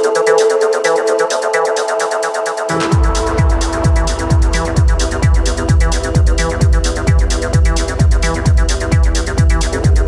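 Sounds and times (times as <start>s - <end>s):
hi-hats: 0.0s - 10.0s
techno kick drum: 0.0s - 10.0s.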